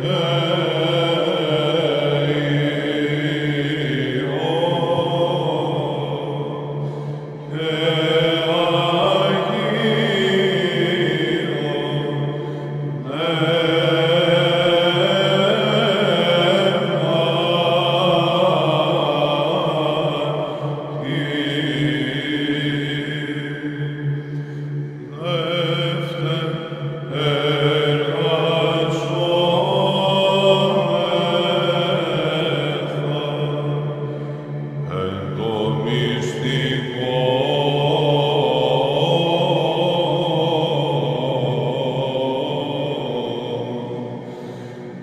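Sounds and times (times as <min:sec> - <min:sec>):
low held vocal drone: 0:00.0 - 0:45.0.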